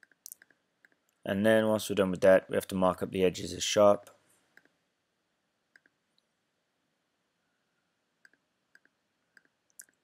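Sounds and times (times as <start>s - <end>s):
computer mouse clicks: 5.7s - 6.3s, 8.2s - 10.0s.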